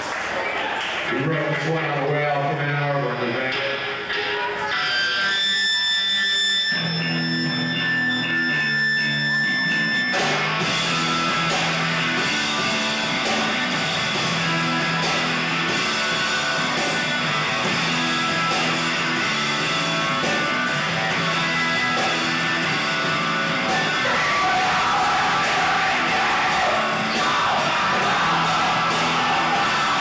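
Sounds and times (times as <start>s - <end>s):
rock band playing: 1.0s - 30.0s
electric guitar riff: 1.1s - 30.0s.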